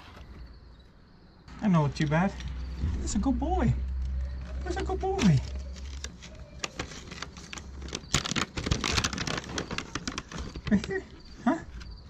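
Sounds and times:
plastic wrapper crinkling: 3.9 - 11.8.

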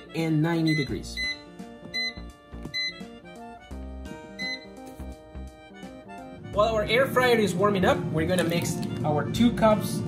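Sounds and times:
background music: 0.0 - 10.0
air fryer short high beeps: 0.6 - 3.1, 4.3 - 4.8.

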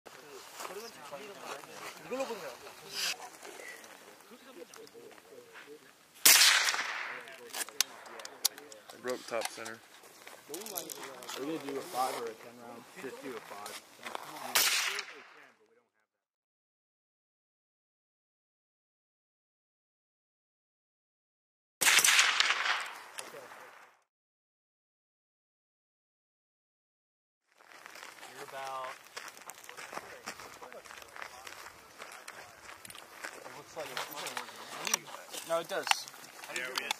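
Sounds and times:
rifle shot with echo: 6.2 - 7.4, 14.5 - 15.4, 21.8 - 23.8.

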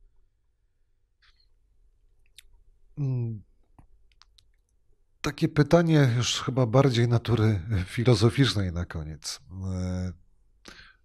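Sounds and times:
faint clicks: 3.6 - 4.8.

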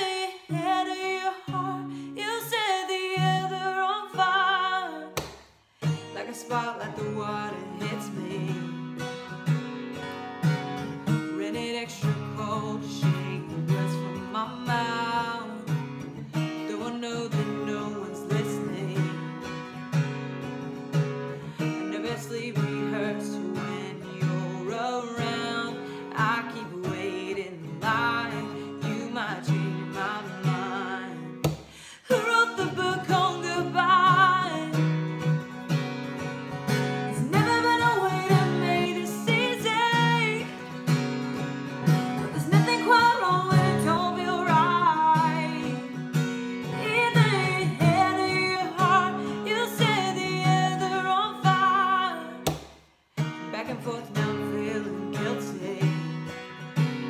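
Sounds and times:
woman singing: 0.0 - 19.8, 21.3 - 52.6, 53.2 - 56.6
strummed acoustic guitar: 0.0 - 57.0.

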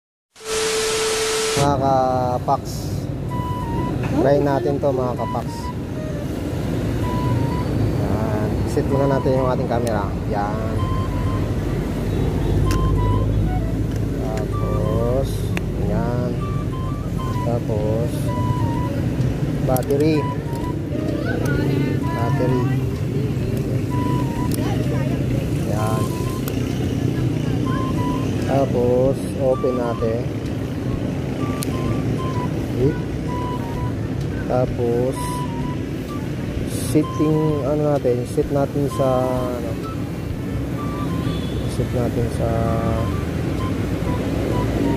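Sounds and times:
brief rising tone: 0.4 - 1.9, 10.6 - 19.1, 40.7 - 41.5
tune of short high notes: 0.4 - 2.4, 3.3 - 23.0, 23.8 - 26.6, 27.6 - 44.9
road traffic rumble: 0.4 - 44.9.

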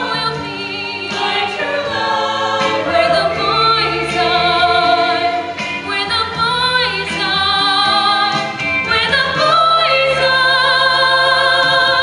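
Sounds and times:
choir singing in parts: 0.0 - 12.0.

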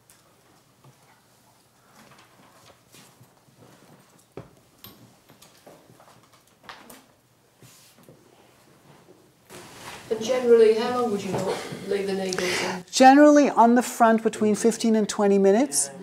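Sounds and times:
rustles of hands: 7.5 - 11.4.

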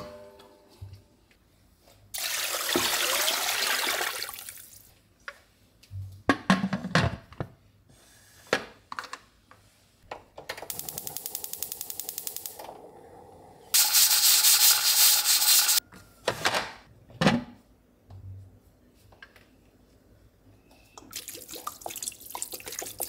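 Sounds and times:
gas stove igniter clicking: 10.7 - 12.7
steam hissing from pressure cooker: 13.8 - 15.8.

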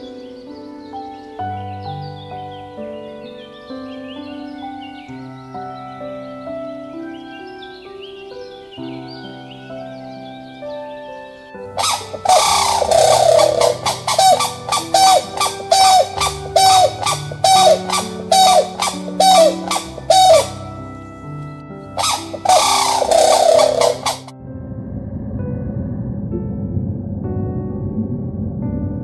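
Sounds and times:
soft background music: 0.0 - 29.0
bird calling loudly: 11.7 - 24.3.

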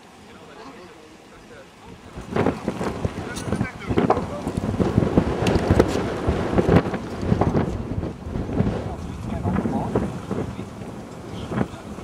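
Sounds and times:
wind buffeting microphone: 1.7 - 12.0.

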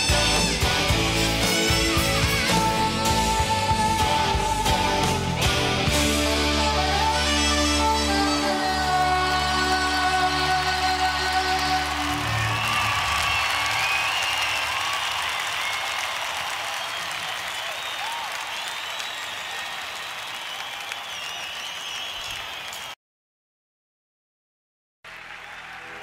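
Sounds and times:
live band final chord: 0.0 - 12.6
audience applause: 8.8 - 23.0, 25.1 - 26.0
audience whistling: 11.5 - 23.0, 25.1 - 26.0.

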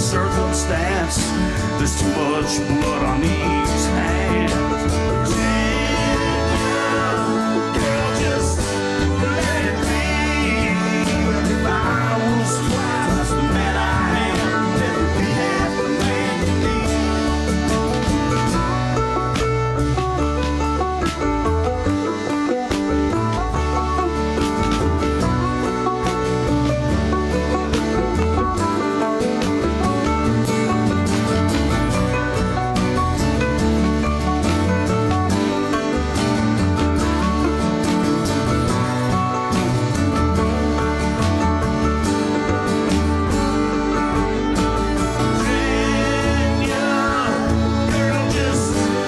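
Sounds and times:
acoustic guitar strumming: 0.0 - 49.0
plucked string lead: 0.0 - 49.0
upright bass: 0.0 - 49.0.

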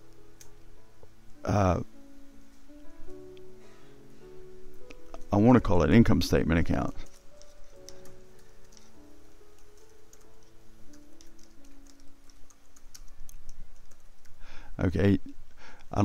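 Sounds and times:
computer keyboard typing: 6.8 - 14.4.

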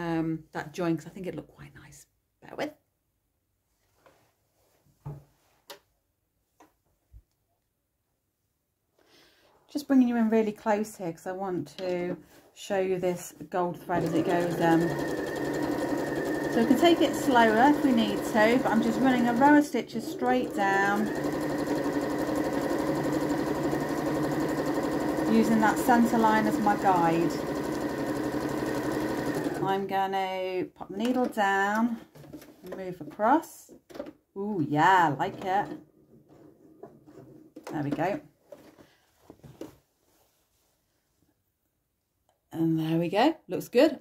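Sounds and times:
woman speaking: 0.0 - 2.8, 9.7 - 15.0, 16.5 - 21.1, 25.2 - 27.4, 29.5 - 33.7, 34.4 - 35.8, 37.7 - 38.3, 42.5 - 44.0
sewing machine stitching: 13.9 - 29.8.

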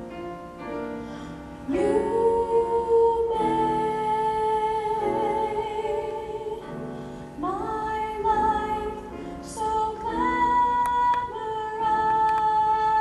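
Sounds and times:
piano: 0.0 - 13.0
mixed choir singing: 1.7 - 6.6.

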